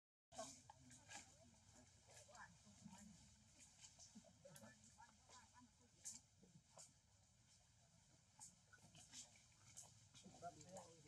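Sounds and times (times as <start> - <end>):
faint voices: 0.3 - 7.0.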